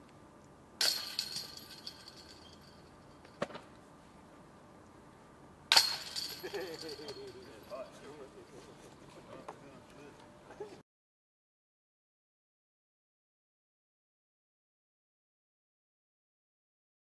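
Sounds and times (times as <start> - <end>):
disc crashing into metal chains: 0.8 - 2.7, 5.7 - 7.4.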